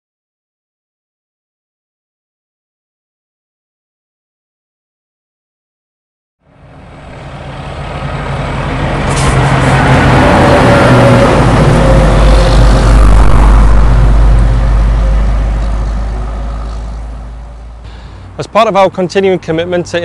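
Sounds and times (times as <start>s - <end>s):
heavy lorry driving past: 6.4s - 20.0s.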